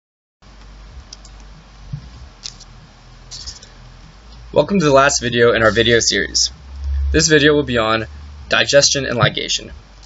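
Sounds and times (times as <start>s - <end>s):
low hum: 0.4s - 10.0s.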